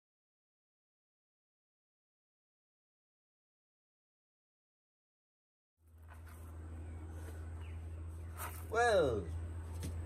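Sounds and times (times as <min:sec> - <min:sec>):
steady low hum: 0:05.8 - 0:10.0.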